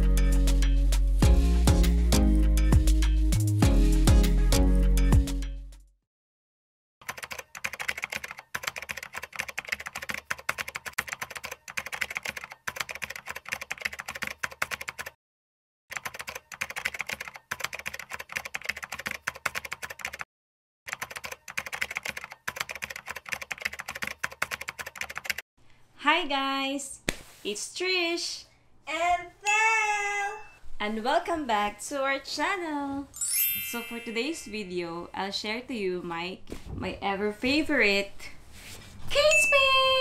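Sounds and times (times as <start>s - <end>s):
rapid typing on keyboard: 7.0s - 15.2s, 15.9s - 20.3s, 20.9s - 25.4s.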